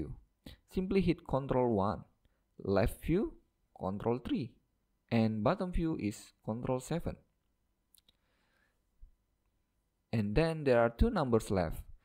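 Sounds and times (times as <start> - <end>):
person speaking: 0.0 - 8.1, 10.1 - 12.0.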